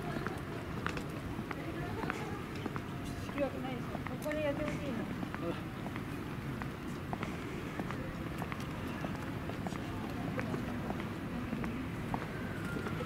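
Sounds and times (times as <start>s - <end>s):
footsteps on pavement: 0.0s - 13.0s
street noise: 0.0s - 13.0s
people talking: 1.5s - 5.6s, 7.7s - 13.0s.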